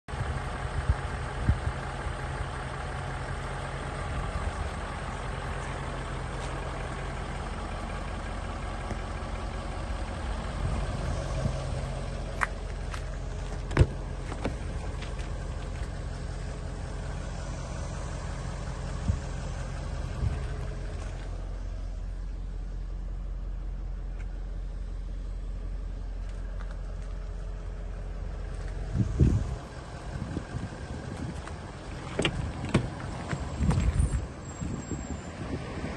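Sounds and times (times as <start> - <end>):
diesel engine idling: 0.1 - 35.9.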